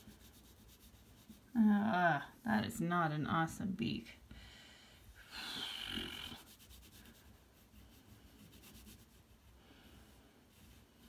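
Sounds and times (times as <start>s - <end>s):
crayon scratching on paper: 0.0s - 1.6s, 6.3s - 9.3s
person exhaling: 4.4s - 6.2s.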